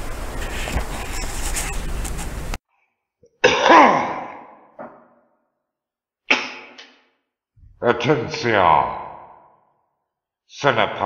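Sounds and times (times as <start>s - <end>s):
man coughing with echo: 3.3s - 4.6s.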